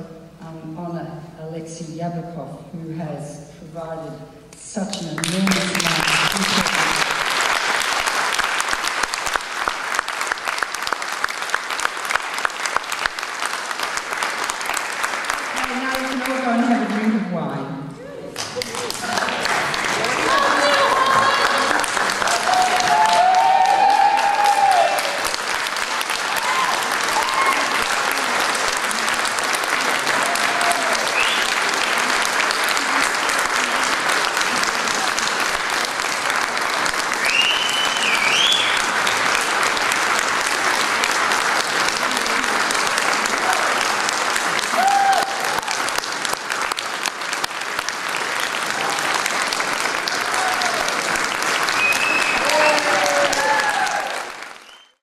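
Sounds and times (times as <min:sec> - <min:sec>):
audience applauding: 0:04.9 - 0:17.2, 0:18.2 - 0:55.0.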